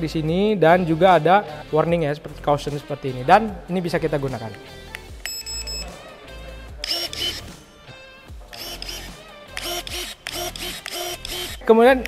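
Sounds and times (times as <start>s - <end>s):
background music: 0.0s - 12.0s
short electronic beeps: 5.2s - 6.0s
pruning shear motor whirring: 6.8s - 7.6s, 8.5s - 11.7s.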